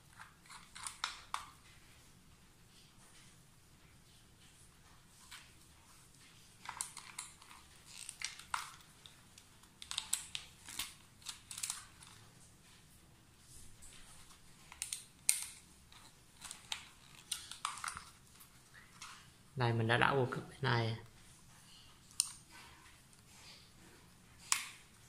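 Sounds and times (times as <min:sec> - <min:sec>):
screwdriver clicks and scrapes: 0:00.1 - 0:01.5
wire rustling: 0:04.1 - 0:19.6.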